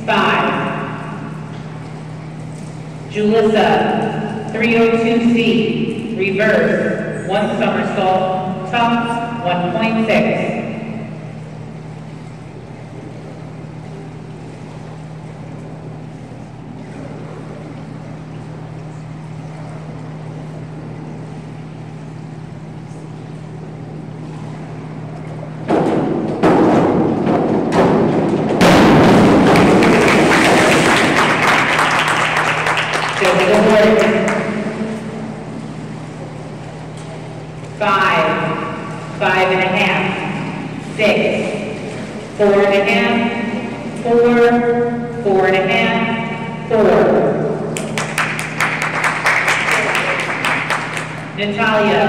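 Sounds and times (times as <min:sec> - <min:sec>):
diving board thump and rattle: 0:25.7 - 0:31.2
crowd clapping and cheering: 0:29.1 - 0:34.4, 0:47.8 - 0:51.4.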